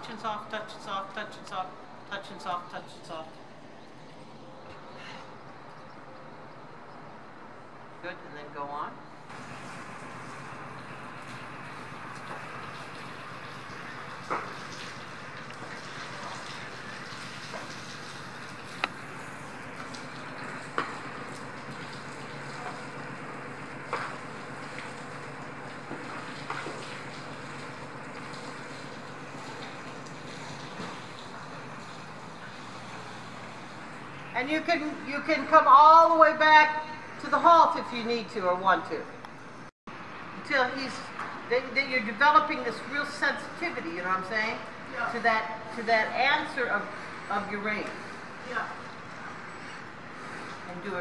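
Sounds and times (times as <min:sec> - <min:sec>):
steady background noise: 0:00.0 - 0:51.0.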